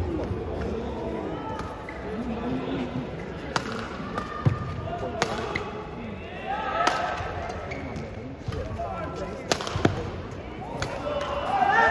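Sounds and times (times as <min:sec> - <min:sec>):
racket striking shuttlecock: 0:09.4 - 0:10.0.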